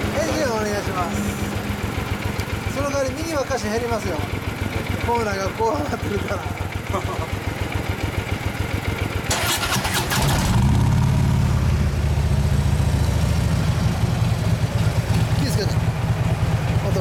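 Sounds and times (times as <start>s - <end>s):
motorcycle engine idling: 0.0s - 17.0s.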